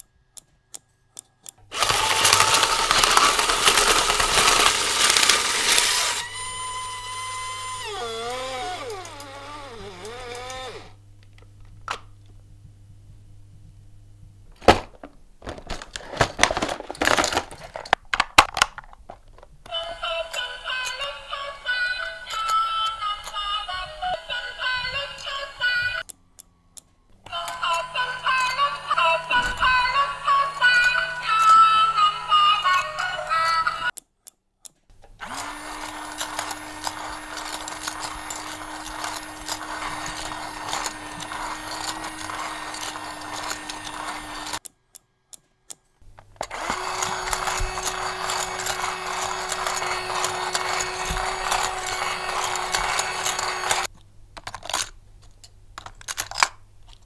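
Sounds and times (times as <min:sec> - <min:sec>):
small electric motor whining: 0:01.7 - 0:11.0, 0:35.2 - 0:44.6, 0:46.4 - 0:53.9
electronic toy melody: 0:27.3 - 0:33.9.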